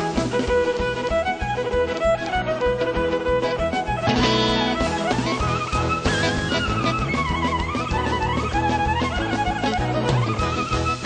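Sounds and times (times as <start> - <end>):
band's steady beat: 0.0 - 11.0
violin melody: 0.0 - 11.0.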